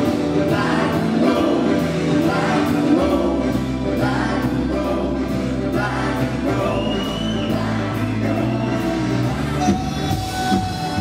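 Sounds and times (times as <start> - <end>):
live electro-pop band with singing: 0.0 - 11.0.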